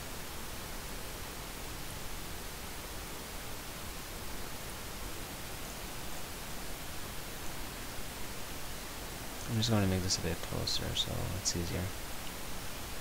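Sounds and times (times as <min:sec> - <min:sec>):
recording background hiss: 0:00.0 - 0:13.0.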